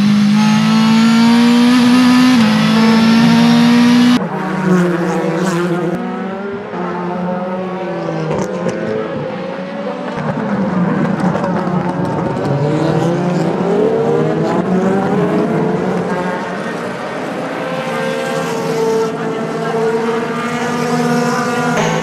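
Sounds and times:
race car passing through corner: 0.0 - 11.0
race car engine at high revs: 0.0 - 22.0.

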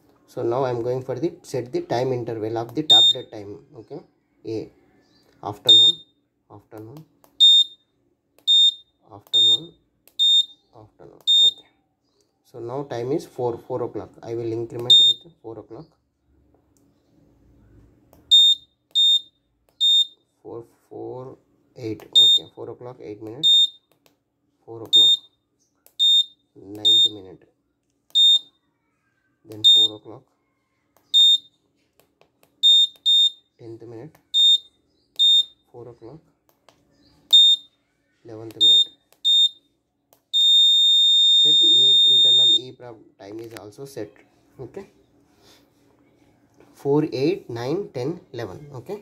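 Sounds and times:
high-pitched electronic buzzer beep: 5.7 - 6.1, 40.4 - 42.7.

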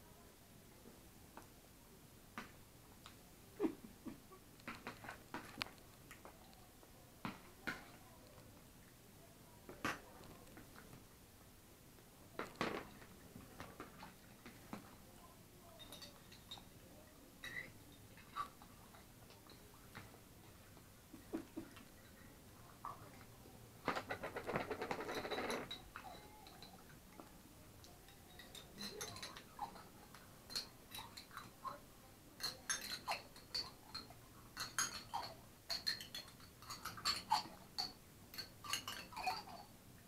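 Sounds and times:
spoons clinking on plates and jar: 15.7 - 16.8, 28.1 - 31.6, 32.4 - 39.7.

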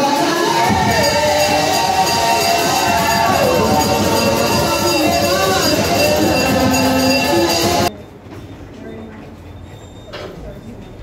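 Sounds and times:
hall room noise: 0.0 - 11.0
murmur of voices: 0.0 - 11.0.

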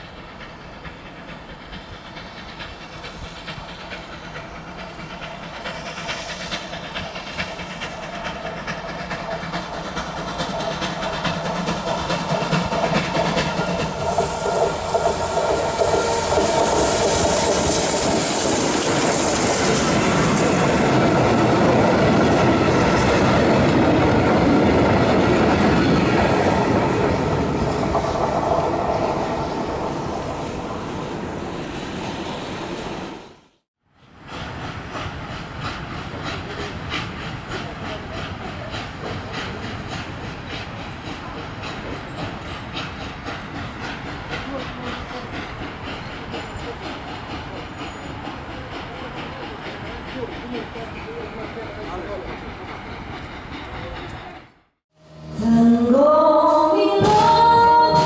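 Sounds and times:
steam hissing: 0.0 - 33.4, 34.0 - 54.5
steam locomotive passing: 0.0 - 58.0
train coaches clattering over rail joints: 34.4 - 54.4.

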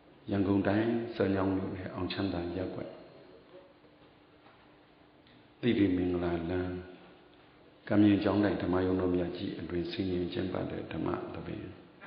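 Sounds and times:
faint room hiss: 0.0 - 12.0
faint steady hum: 0.0 - 12.0.

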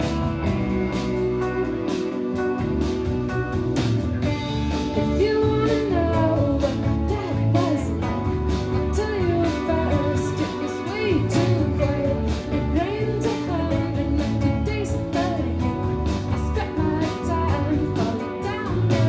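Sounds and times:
drums with cymbal hits: 0.0 - 19.0
electric guitars: 0.0 - 19.0
woman singing: 4.8 - 19.0.

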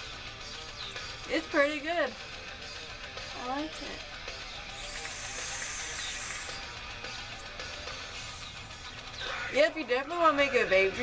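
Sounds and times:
vape hissing: 4.7 - 7.0.

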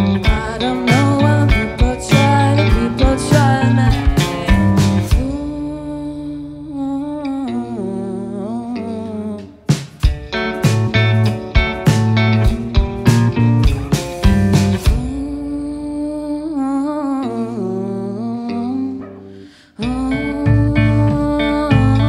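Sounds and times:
drums: 0.0 - 5.8, 9.6 - 15.7, 19.8 - 22.0
electric guitars: 0.0 - 15.7, 17.2 - 22.0
electric bass: 0.0 - 16.9, 17.5 - 22.0.

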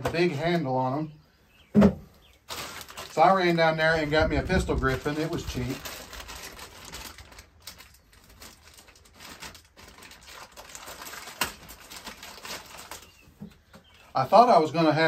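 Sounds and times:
plastic bag crinkling: 2.4 - 14.1.

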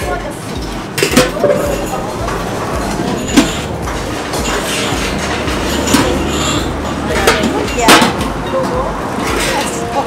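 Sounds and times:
metal lids clinking: 0.9 - 9.8.

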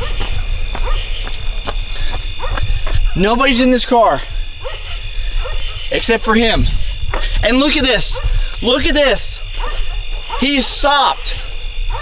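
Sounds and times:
low rumble on microphone: 0.0 - 3.3, 4.2 - 10.4
night insects chorus: 0.0 - 12.0.

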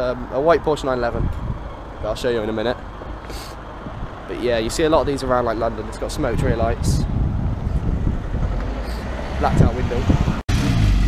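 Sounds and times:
low rumble of street noise: 0.0 - 11.0.

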